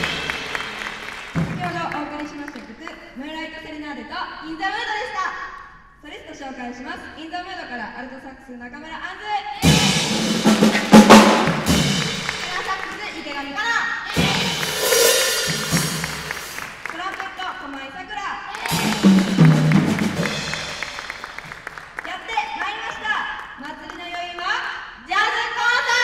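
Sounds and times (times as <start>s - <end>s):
jazz big band hits: 0.0s - 2.0s, 9.6s - 13.1s, 14.1s - 16.9s, 18.6s - 22.0s.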